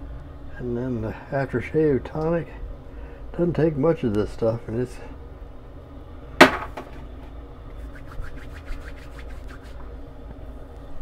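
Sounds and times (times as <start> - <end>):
sharp knock: 6.4 - 7.0
hands patting face: 7.8 - 9.9.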